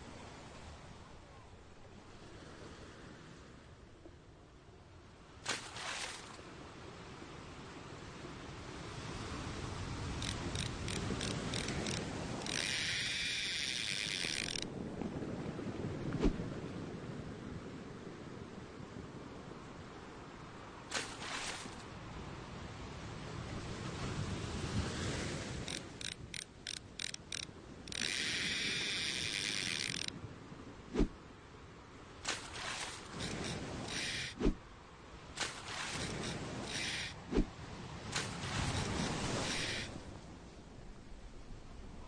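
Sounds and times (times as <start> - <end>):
fishing reel ratchet clicks: 10.2 - 14.6, 25.7 - 30.1.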